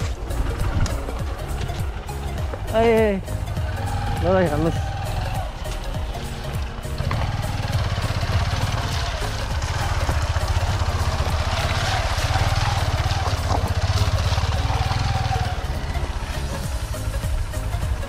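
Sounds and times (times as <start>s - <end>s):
background music: 0.0s - 18.0s
motorcycle engine running: 0.0s - 18.0s.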